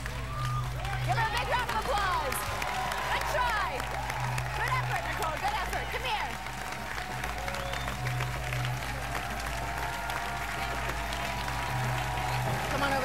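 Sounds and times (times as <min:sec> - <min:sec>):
audience shouts: 0:00.0 - 0:08.2, 0:08.9 - 0:13.0
audience applauding: 0:00.0 - 0:13.0.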